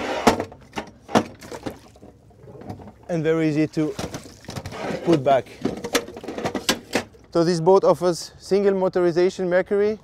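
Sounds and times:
water splashing: 1.3 - 6.3.

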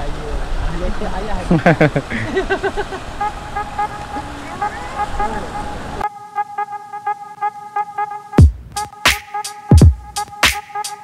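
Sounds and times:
voices: 0.0 - 6.0
outdoor noise: 0.0 - 11.0
electronic background music: 3.2 - 11.0.

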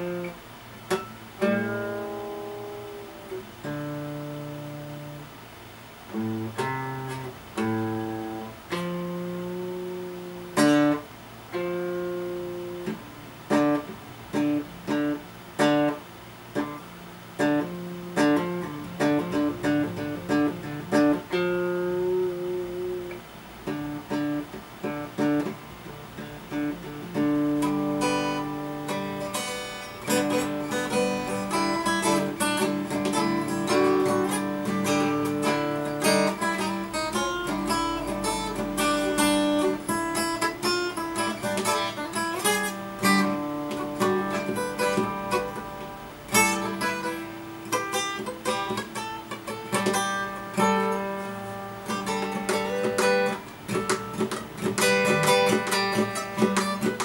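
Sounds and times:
acoustic guitar picking: 0.0 - 57.0.

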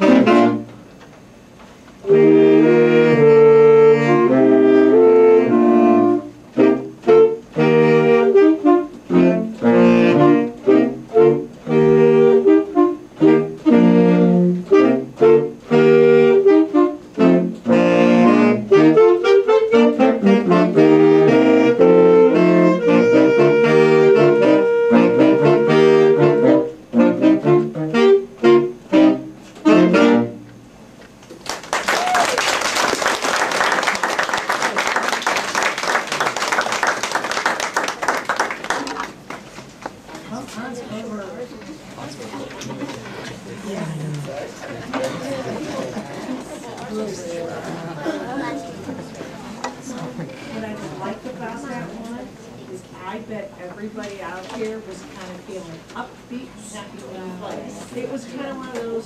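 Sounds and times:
saxophone ensemble playing: 0.0 - 0.9, 2.0 - 30.8, 42.6 - 52.4
audience applause: 31.4 - 39.5.

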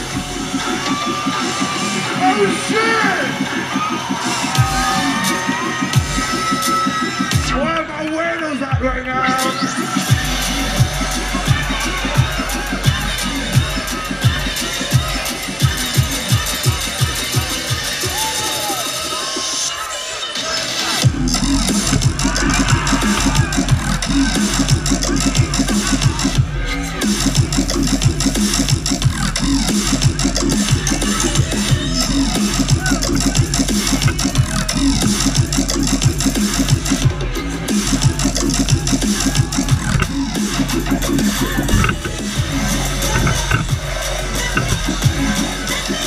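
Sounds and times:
heavy bass electronic music: 0.0 - 46.0.

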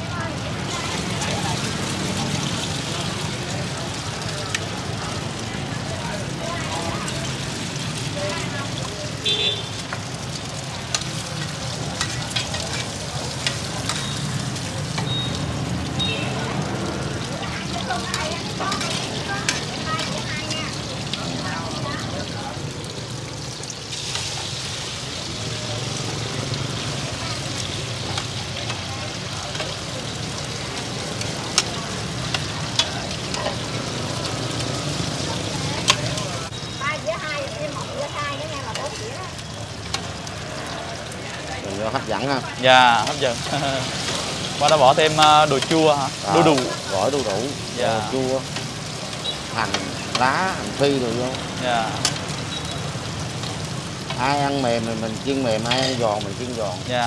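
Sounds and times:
food sizzling in hot oil: 0.0 - 57.0.

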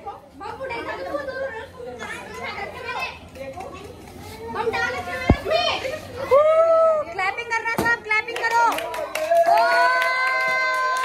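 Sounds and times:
children shouting and chattering: 0.0 - 7.8
sharp thump: 5.2 - 5.5.

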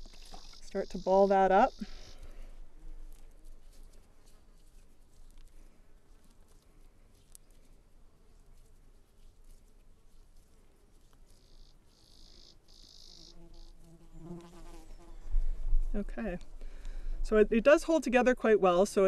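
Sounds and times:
insect buzzing: 0.0 - 3.4, 11.4 - 15.6
soft rustling of moist soil: 0.0 - 19.0.

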